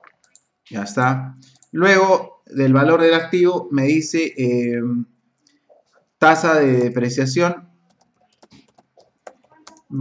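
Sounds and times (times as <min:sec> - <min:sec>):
computer keyboard typing: 0:07.9 - 0:10.0.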